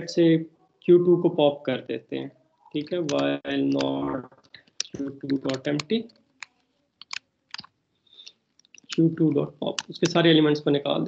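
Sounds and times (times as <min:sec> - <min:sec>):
computer keyboard keystrokes: 0:03.8 - 0:05.9, 0:07.0 - 0:07.7.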